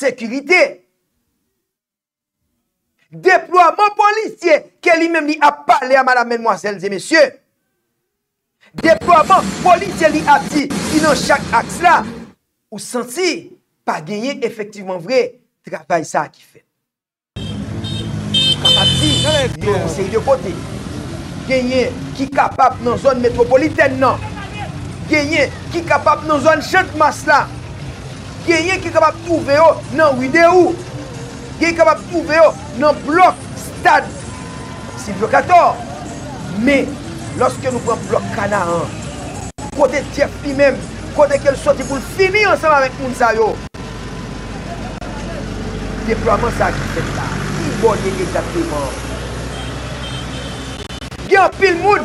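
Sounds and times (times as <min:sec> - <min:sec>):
motor vehicle running: 0:08.8 - 0:12.2, 0:17.4 - 0:52.0
voices: 0:18.6 - 0:27.7, 0:28.4 - 0:43.7, 0:44.3 - 0:49.5, 0:51.2 - 0:52.0
vehicle engine running: 0:22.8 - 0:35.0
faint voices: 0:28.7 - 0:39.8, 0:44.4 - 0:46.0.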